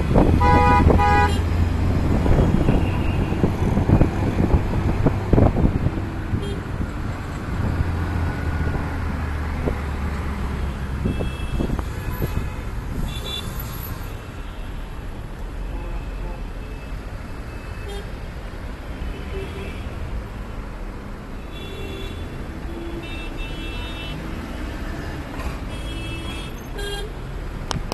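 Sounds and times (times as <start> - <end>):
traffic engines rumbling: 0.0 - 27.9
car horns honking: 0.1 - 1.6, 2.3 - 4.0, 10.6 - 13.6.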